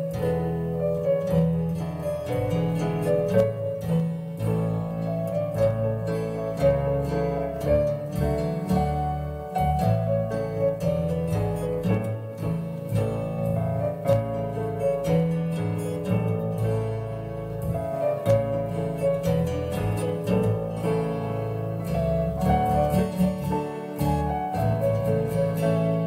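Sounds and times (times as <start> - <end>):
upright piano lullaby: 0.0 - 26.0.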